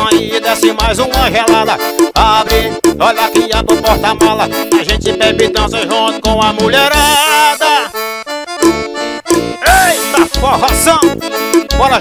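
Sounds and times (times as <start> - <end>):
bass drum: 0.0 - 7.3, 8.6 - 12.0
accordion held notes: 0.0 - 12.0.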